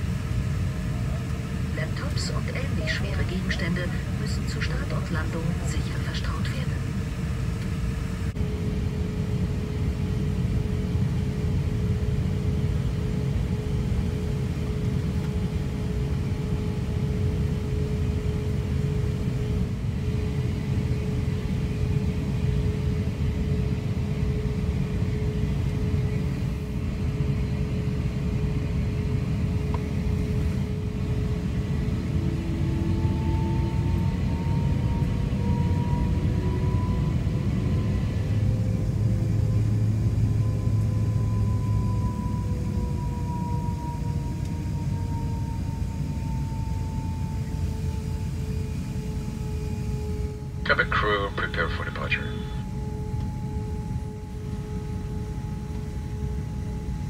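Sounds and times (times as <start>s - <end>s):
aircraft cabin rumble: 0.0s - 36.5s, 42.4s - 52.4s
engine whine rising in pitch: 7.0s - 50.7s, 52.3s - 57.0s
engines humming: 29.7s - 56.7s.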